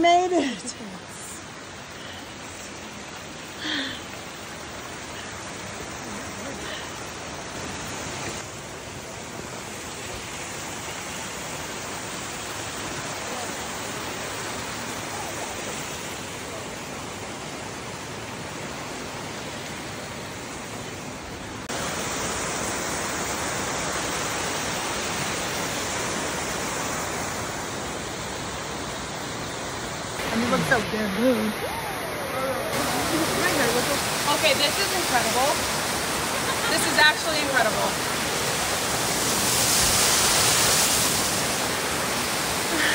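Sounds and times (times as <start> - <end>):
creek flowing over stones: 0.0 - 42.9.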